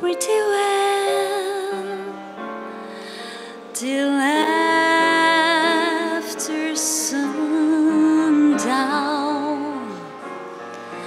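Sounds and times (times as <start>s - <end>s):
woman singing jazz ballad: 0.0s - 2.4s, 3.7s - 10.3s
grand piano chords: 0.0s - 11.0s.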